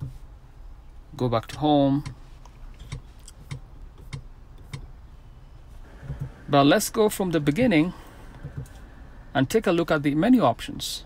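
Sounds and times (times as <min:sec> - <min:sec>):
low hum in car cabin: 0:00.0 - 0:11.0
soft clicks of car controls: 0:01.4 - 0:04.9, 0:08.3 - 0:08.9.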